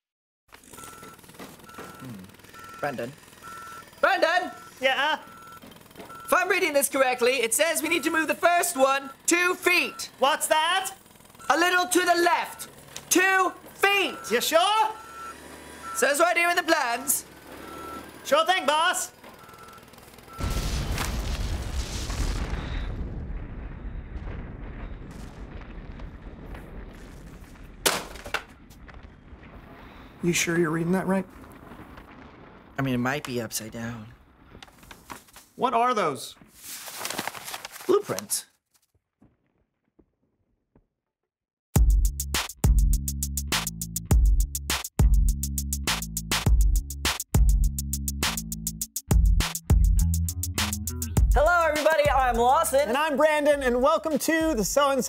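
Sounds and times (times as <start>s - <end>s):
reversing alarm beeping: 0.6s - 10.2s, 11.4s - 12.7s, 13.8s - 18.1s, 19.3s - 20.7s, 22.4s - 23.0s
demolition blast boom: 20.4s - 34.6s
rumble and crackle of collapse: 20.4s - 35.6s, 38.9s - 40.8s
man speaking: 51.6s - 55.0s.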